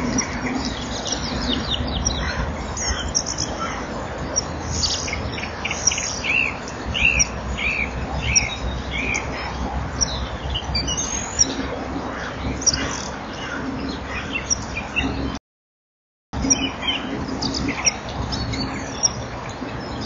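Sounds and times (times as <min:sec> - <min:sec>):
birds chirping and calling: 0:00.0 - 0:15.4, 0:16.4 - 0:20.0
steady low hum: 0:00.0 - 0:15.4.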